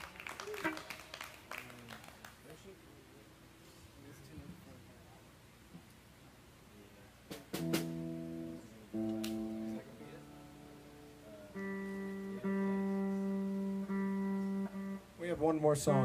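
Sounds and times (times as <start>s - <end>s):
electric guitar notes plucked: 7.5s - 16.0s.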